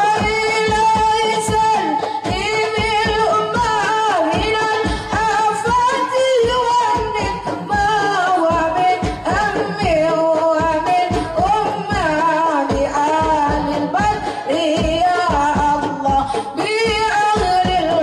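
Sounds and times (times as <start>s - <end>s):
women singing through microphones: 0.0s - 18.0s.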